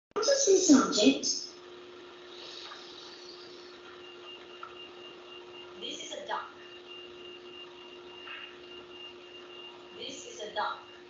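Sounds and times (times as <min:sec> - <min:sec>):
faint electrical hum: 0:00.2 - 0:11.0
high whine: 0:00.2 - 0:11.0.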